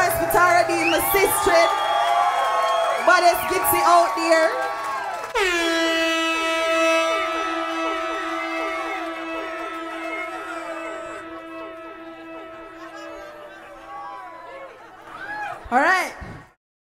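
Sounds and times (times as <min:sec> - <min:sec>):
long held horn-like note: 0:03.1 - 0:15.1
audience chattering and calling: 0:06.0 - 0:15.9.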